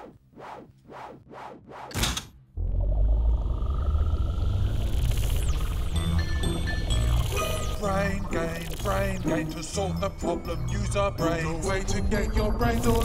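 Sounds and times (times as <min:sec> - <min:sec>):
low rumbling hum: 0:02.5 - 0:09.3
faint rising whine: 0:02.6 - 0:09.4.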